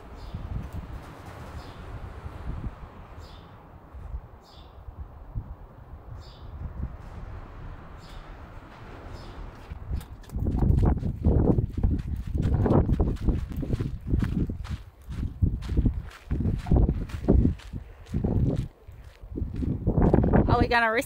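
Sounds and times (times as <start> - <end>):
wind buffeting microphone: 0.0 - 21.0
footsteps on gravel: 9.5 - 20.3.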